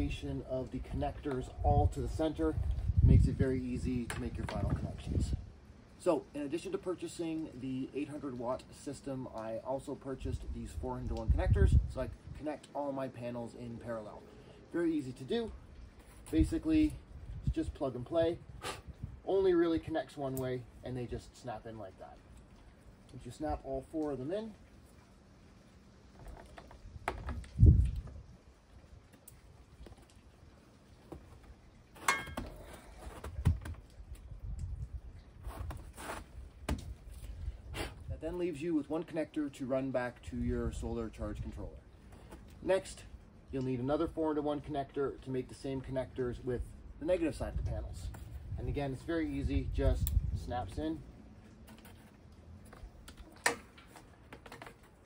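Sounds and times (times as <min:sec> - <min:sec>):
cable handling rustle: 0:51.4 - 0:55.0.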